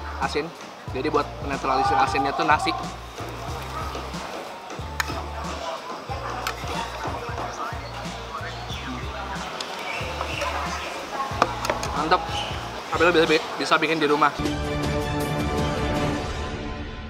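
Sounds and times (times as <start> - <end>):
background music with bass line: 0.0 - 13.4, 14.4 - 17.0.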